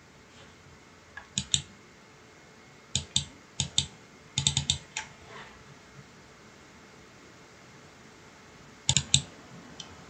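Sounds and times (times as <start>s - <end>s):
computer mouse clicks: 1.2s - 1.7s, 3.0s - 5.1s, 8.9s - 10.0s.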